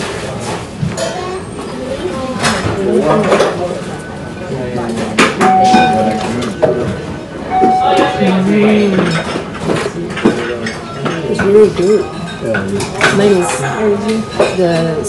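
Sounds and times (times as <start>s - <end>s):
dishes and cutlery clinking: 4.8s - 15.0s
short beeps: 5.4s - 6.6s, 7.5s - 8.8s.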